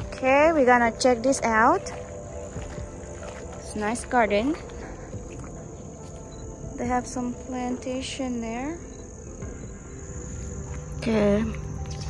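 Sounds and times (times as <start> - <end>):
insects singing: 0.0 - 12.0.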